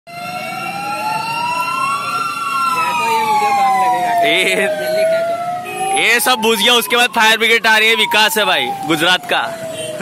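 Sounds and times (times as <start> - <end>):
fire engine siren wailing: 0.1 - 10.0.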